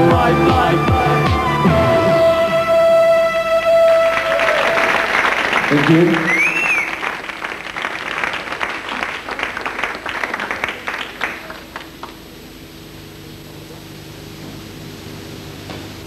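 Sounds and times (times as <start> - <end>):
held synthesizer note: 0.0 - 4.4
crowd whistling: 0.0 - 7.4
audience applauding and cheering: 3.5 - 12.3.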